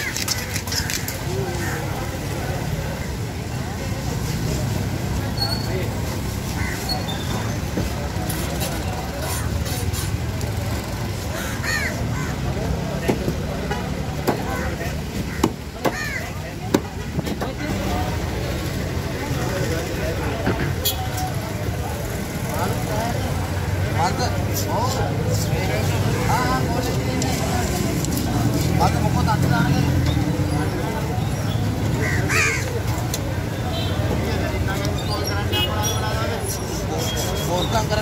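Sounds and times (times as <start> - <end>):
people talking: 0.0 - 38.0
road traffic hum: 0.0 - 38.0
vehicle rumble: 0.0 - 38.0
cleaver chopping on wooden block: 15.4 - 16.0.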